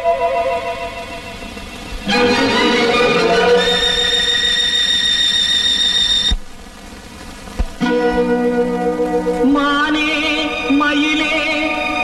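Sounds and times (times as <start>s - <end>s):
orchestral film song music: 2.0s - 4.0s.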